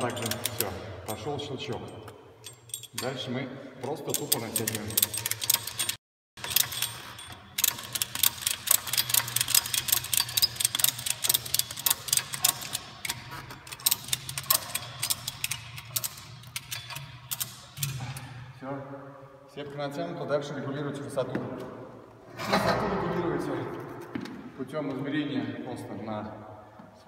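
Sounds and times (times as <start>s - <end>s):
rapid ratchet clicks: 4.1s - 18.0s.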